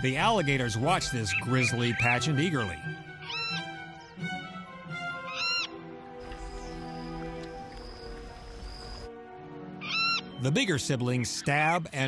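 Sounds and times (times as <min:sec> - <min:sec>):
background music with sustained notes: 0:00.0 - 0:12.0
bird chicks squawking: 0:03.2 - 0:03.8, 0:05.2 - 0:09.1, 0:09.8 - 0:10.4.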